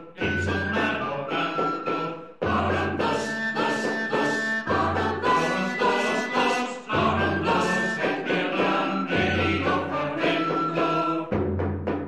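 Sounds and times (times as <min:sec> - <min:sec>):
choir holding sustained notes: 0:00.0 - 0:11.4.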